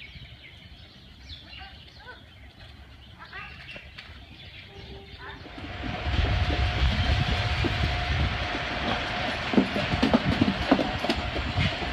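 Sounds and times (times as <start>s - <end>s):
mechanical rumble: 4.7s - 11.9s.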